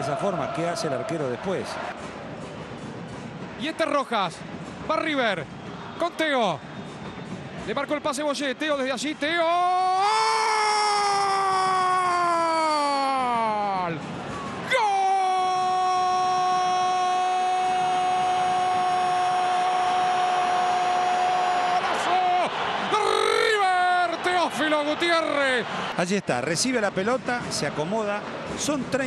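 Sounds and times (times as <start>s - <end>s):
man shouting celebration: 9.5s - 13.9s, 14.7s - 25.7s.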